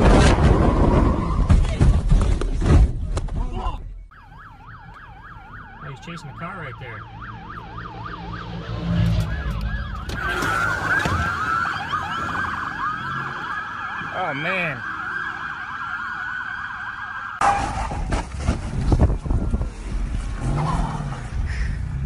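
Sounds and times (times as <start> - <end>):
police sirens yelping: 4.1 - 17.5
low rumble of vehicles: 15.0 - 22.0.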